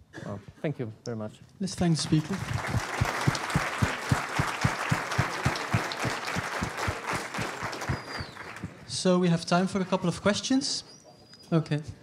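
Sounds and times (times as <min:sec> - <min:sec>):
audience applauding: 0:01.8 - 0:09.0.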